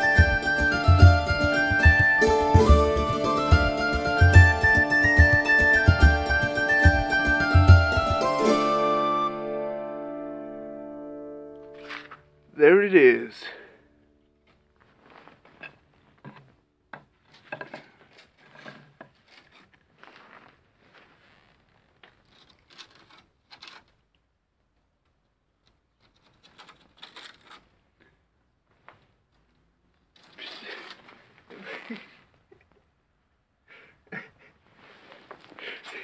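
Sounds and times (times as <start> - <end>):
scuffs clicks and rustles of handling: 14.5 - 24.1, 25.6 - 28.1.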